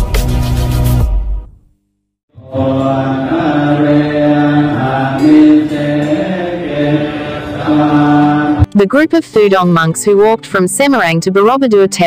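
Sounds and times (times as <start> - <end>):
men chanting in low voices: 2.3 - 8.7.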